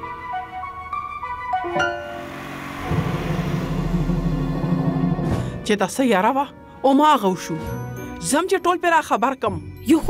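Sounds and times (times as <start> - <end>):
car engine low rumble: 2.1 - 5.5.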